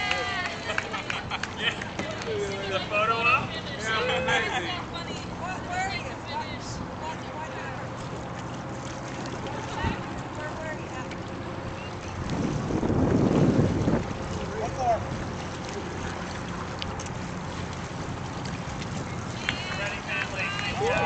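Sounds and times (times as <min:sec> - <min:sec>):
wind buffeting microphone: 0:08.1 - 0:21.0.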